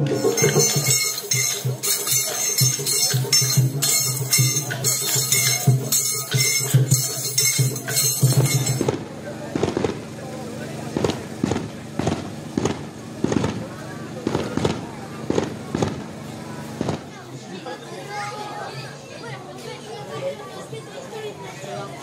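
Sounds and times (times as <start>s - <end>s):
festival music: 0.0s - 17.1s
crowd chatter: 0.0s - 22.0s
sharp cracks: 9.6s - 10.0s, 11.0s - 16.1s, 16.8s - 17.2s.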